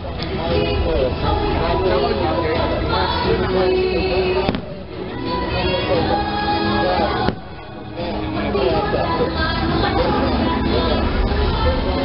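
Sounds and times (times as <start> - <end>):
fireworks show music: 0.0 - 12.0
firework bang: 4.5 - 4.8, 7.2 - 7.6.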